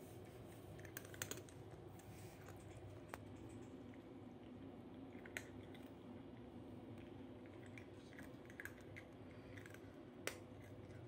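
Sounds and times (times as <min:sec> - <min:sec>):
kitten crunching dry food: 0:00.0 - 0:11.0.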